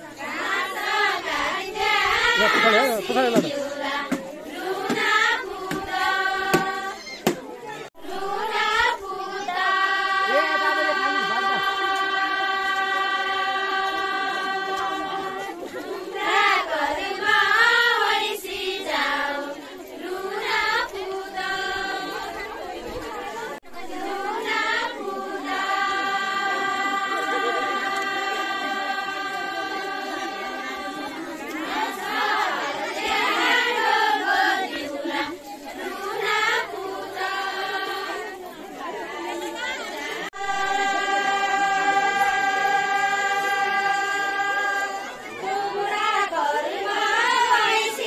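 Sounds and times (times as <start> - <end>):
women singing in unison: 0.0 - 48.0.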